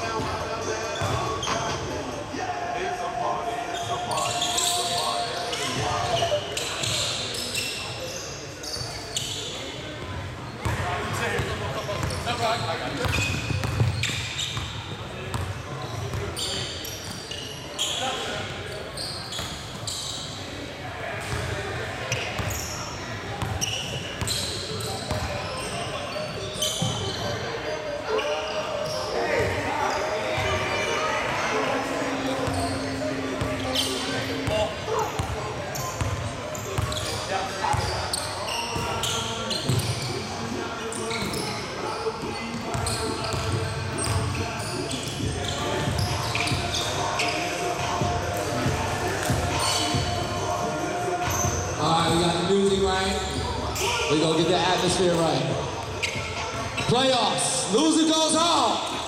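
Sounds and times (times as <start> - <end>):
basketball bouncing on hardwood court: 13.0 - 14.0.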